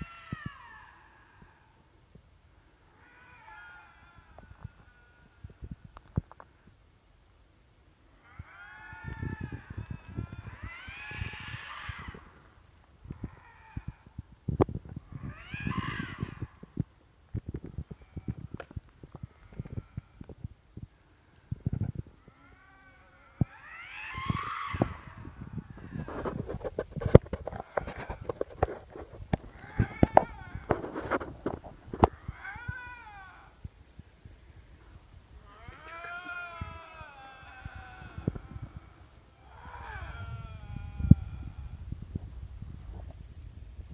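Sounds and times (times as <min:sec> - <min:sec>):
lynx yowling: 0:00.0 - 0:01.9, 0:02.8 - 0:06.0, 0:08.1 - 0:14.3, 0:15.0 - 0:16.9, 0:22.1 - 0:42.2.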